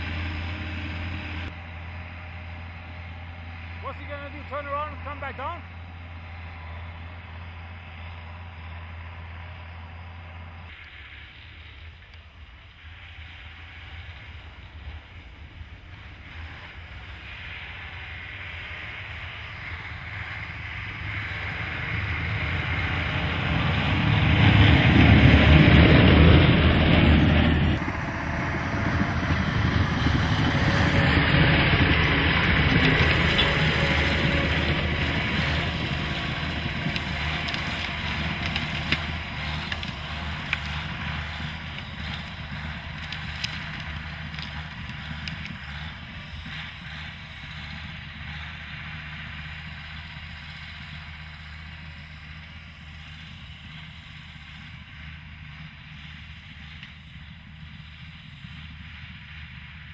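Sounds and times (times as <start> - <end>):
tracked vehicle engine running: 0.0 - 59.9.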